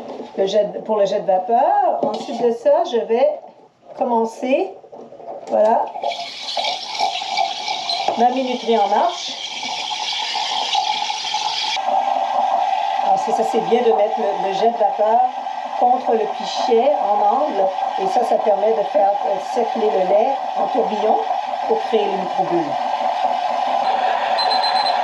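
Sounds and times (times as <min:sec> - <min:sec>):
steam wand hissing: 0:06.0 - 0:12.0
timer beeping rapidly: 0:23.8 - 0:25.0.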